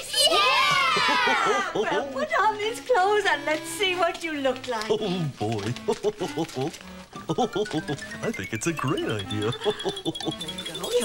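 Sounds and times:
children laughing and exclaiming: 0:00.0 - 0:02.6
background music: 0:00.0 - 0:11.0.

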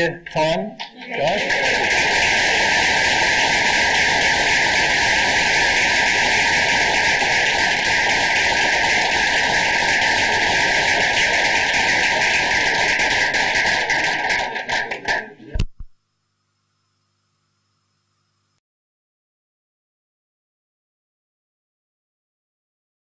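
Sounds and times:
audience applauding: 0:00.8 - 0:15.4.

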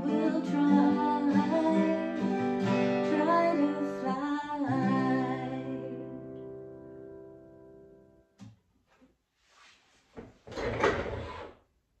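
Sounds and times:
rustling and handling noise: 0:08.7 - 0:10.8.

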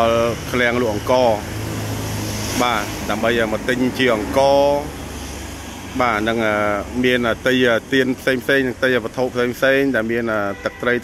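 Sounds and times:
person speaking: 0:00.0 - 0:01.6, 0:02.5 - 0:05.0.

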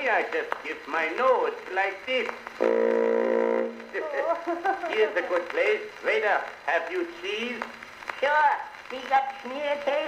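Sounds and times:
buzzy wind instrument note: 0:02.6 - 0:04.0
laughing talk: 0:03.9 - 0:05.8.

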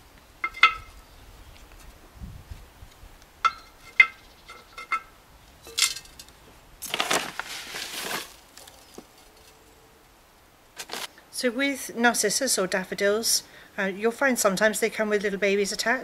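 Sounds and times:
clinks of terracotta pot: 0:03.4 - 0:06.3
water pouring onto compost: 0:06.8 - 0:08.4.

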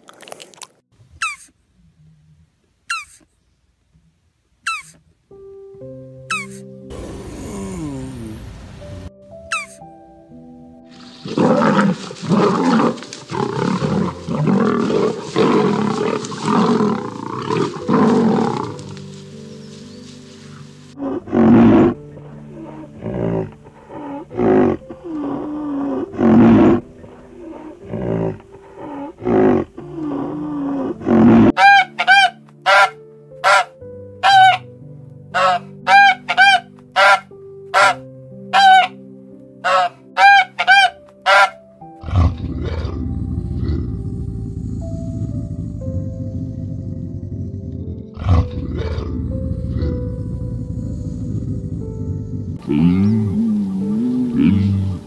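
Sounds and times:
soft background music: 0:04.7 - 0:55.0
swan honking: 0:09.5 - 0:09.8, 0:31.5 - 0:34.7, 0:35.3 - 0:39.0, 0:39.6 - 0:42.3
lion roaring: 0:11.0 - 0:19.0, 0:21.0 - 0:31.6, 0:42.0 - 0:55.0
low grunts: 0:42.1 - 0:55.0.

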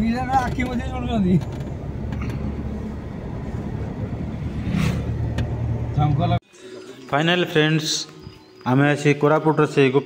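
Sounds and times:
engine and road rumble: 0:00.0 - 0:06.4.

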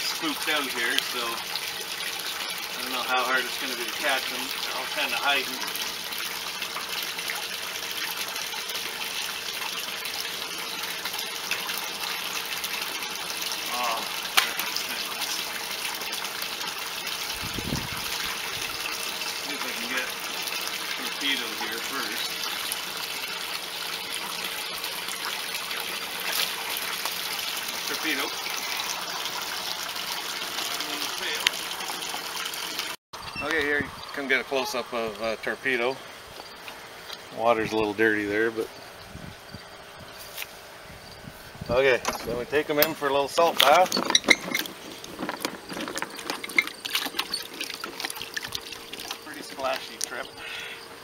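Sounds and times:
pond water trickling and splashing: 0:00.0 - 0:51.0
tub knocking in a cart: 0:43.6 - 0:48.1.

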